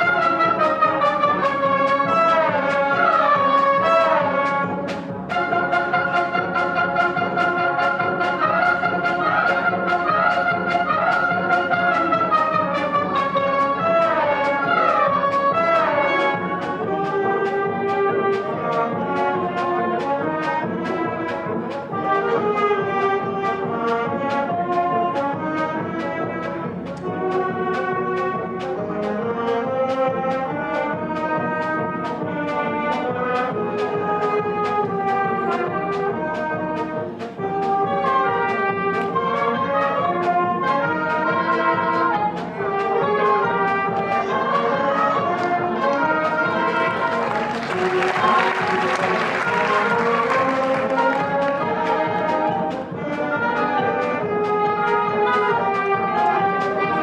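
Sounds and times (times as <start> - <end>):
concert wind band playing: 0.0 - 57.0.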